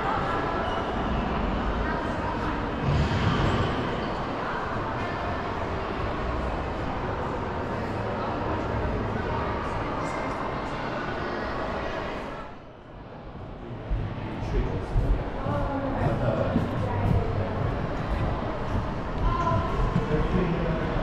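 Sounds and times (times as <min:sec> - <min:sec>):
indistinct chatter of people: 0:00.0 - 0:21.0.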